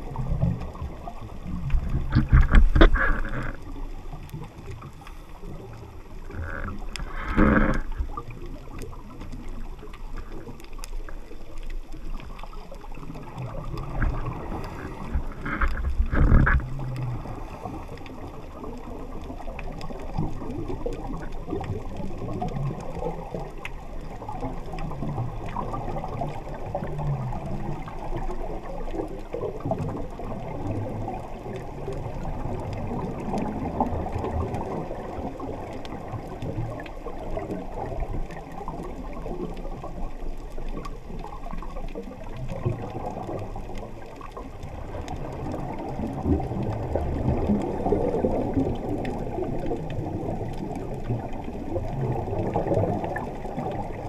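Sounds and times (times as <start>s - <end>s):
scuba regulator breathing bubbles: 1.7s - 3.9s, 5.0s - 8.4s, 13.5s - 18.7s.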